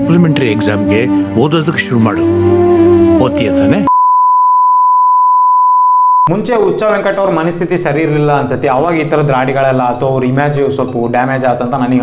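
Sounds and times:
steady test tone beep: 3.9s - 6.3s.

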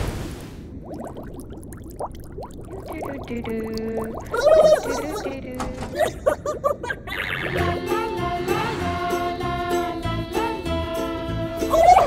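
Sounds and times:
cartoon rising bubble bloops: 0.7s - 7.7s
pitch-bending voice-like sound: 2.8s - 6.2s, 7.1s - 7.8s
held musical tone: 7.5s - 12.0s.

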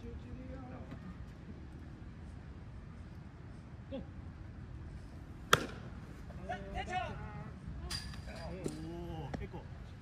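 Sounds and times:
baseball bat cracking ball: 5.5s - 6.0s.

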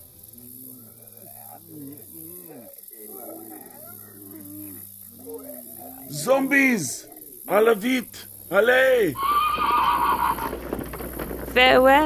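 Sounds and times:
zombies moaning: 0.0s - 10.4s.

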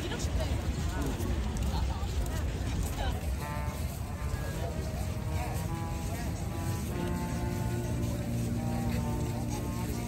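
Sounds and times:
faint background music: 0.0s - 10.0s
people talking close by: 0.0s - 10.0s.

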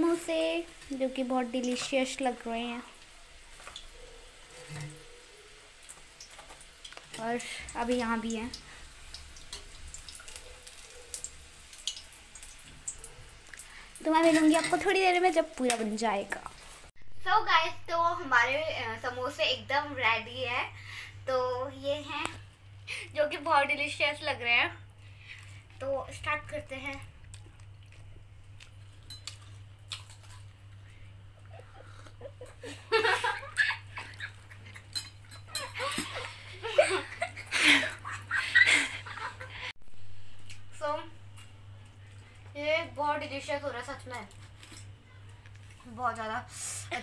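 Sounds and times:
deep-frying in hot oil: 0.0s - 16.9s, 17.5s - 47.0s
oil crackles and pops: 0.0s - 16.9s, 24.9s - 31.0s, 40.3s - 46.3s
low steady hum: 0.0s - 47.0s
crunchy chewing: 26.9s - 32.2s, 44.2s - 45.8s.

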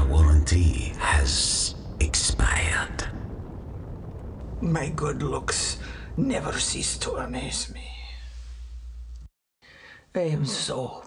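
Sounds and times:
breathy whispering: 7.4s - 8.6s.

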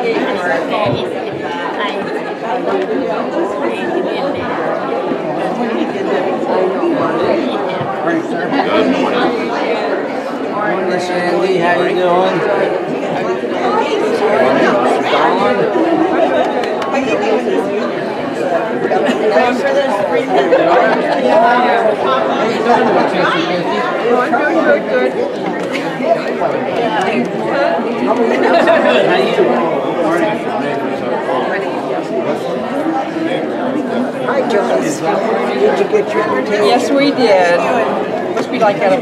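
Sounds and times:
many people chatting: 0.0s - 39.0s.

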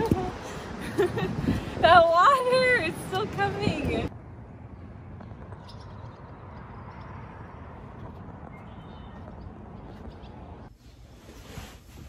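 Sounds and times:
faint bird chirps: 8.5s - 9.3s.

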